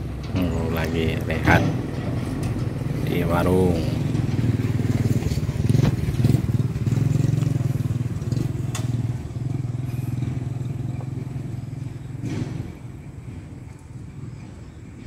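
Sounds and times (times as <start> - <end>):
small engine idling: 0.0 - 15.0.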